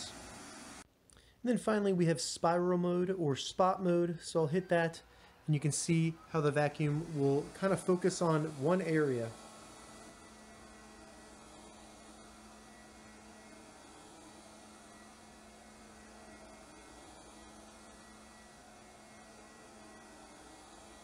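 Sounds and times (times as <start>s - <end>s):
robot vacuum motor hum: 0.0s - 0.8s, 5.5s - 21.0s.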